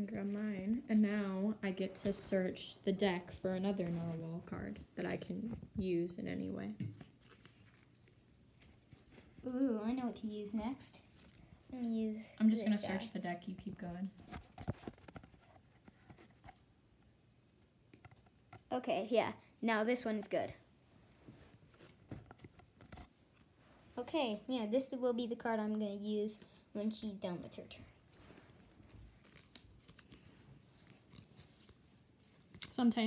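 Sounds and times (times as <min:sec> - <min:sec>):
playing cards rustling and clicking: 0:13.4 - 0:16.7, 0:28.4 - 0:33.0.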